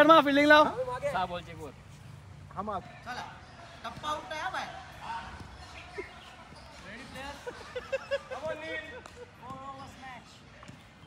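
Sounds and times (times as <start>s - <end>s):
players calling out: 2.7s - 10.9s.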